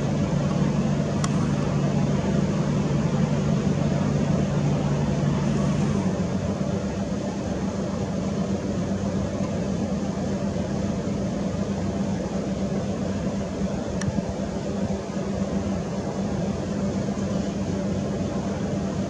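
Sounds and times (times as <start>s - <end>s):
low machine hum: 0.0s - 19.0s
faint click: 1.2s - 1.5s, 14.0s - 14.2s.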